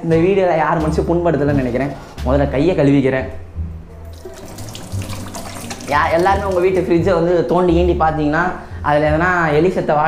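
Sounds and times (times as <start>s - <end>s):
tap water splashing into steel sink: 4.1s - 6.9s.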